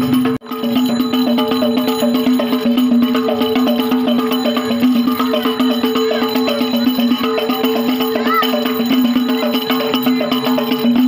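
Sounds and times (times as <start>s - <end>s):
frame drums fast beat: 0.0s - 11.0s.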